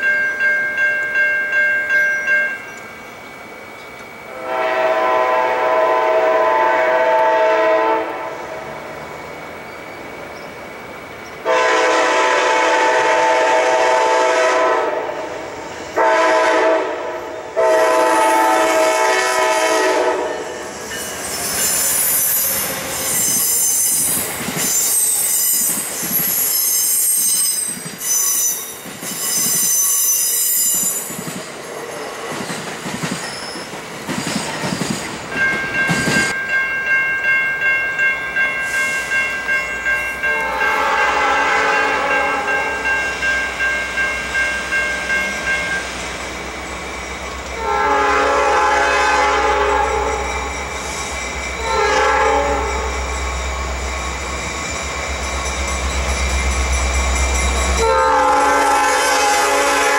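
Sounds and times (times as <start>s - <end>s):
crossing bell ringing: 0.0s - 5.9s, 17.2s - 31.2s, 35.3s - 59.9s
train horn chord: 4.3s - 8.6s, 11.4s - 20.6s, 40.2s - 42.8s, 47.5s - 50.5s, 51.6s - 53.0s, 57.7s - 59.9s
wheel and brake squeal: 20.6s - 31.3s, 33.2s - 34.8s.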